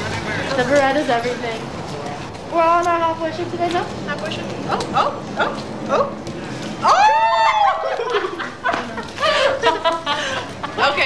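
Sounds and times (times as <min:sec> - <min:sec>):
people yelping excitedly: 0:06.8 - 0:08.2.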